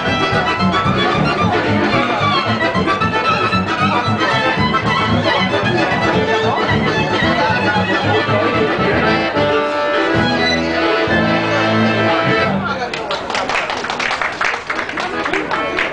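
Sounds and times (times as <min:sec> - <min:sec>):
live music with pulsing bass beat: 0:00.0 - 0:12.8.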